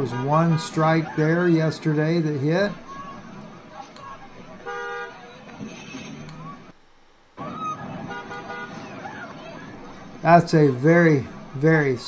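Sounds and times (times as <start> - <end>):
voices: 0.0 - 6.8, 7.4 - 12.0
traffic noise: 0.0 - 12.0
car horn: 4.5 - 6.2, 7.9 - 9.0.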